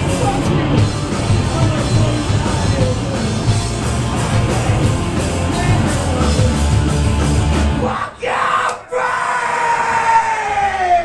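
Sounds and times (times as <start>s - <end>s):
live rock band: 0.0s - 8.3s.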